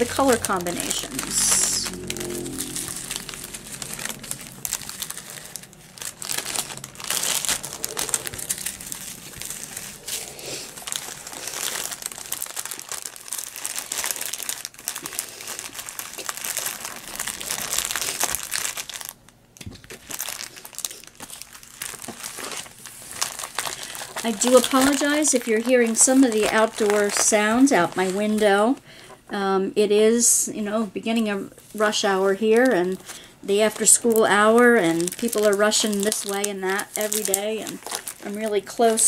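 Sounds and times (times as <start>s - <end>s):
plastic bags crinkling: 0.0s - 28.8s, 31.6s - 39.0s.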